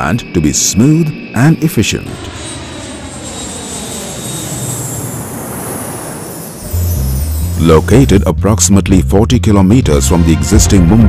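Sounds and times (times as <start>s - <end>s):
jet airliner engine rush: 0.0s - 8.2s.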